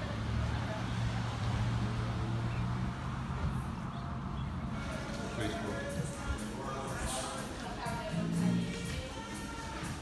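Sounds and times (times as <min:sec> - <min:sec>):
outdoor background noise: 0:00.0 - 0:10.0.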